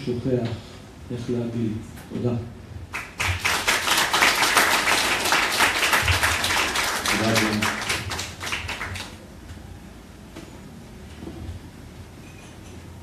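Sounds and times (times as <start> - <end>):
small audience applauding: 2.9 - 9.3.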